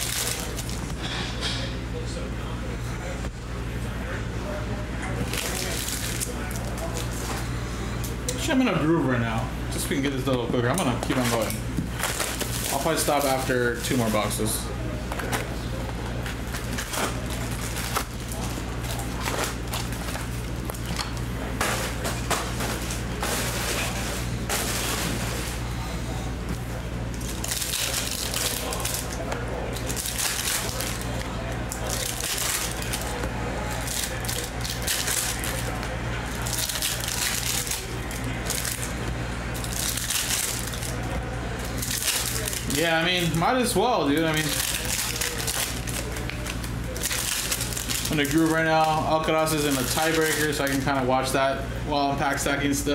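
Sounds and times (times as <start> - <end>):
foil packs tearing and crinkling: 0.0 - 0.9, 5.2 - 7.3, 11.0 - 14.6, 16.2 - 20.9, 21.5 - 25.6, 27.2 - 39.0, 39.6 - 51.0
steady low hum: 0.0 - 52.9.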